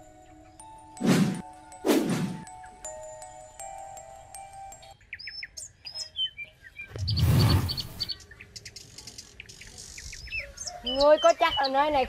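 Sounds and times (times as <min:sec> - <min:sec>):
birds chirping: 0:04.8 - 0:12.0
loud whooshing rush: 0:06.9 - 0:08.1.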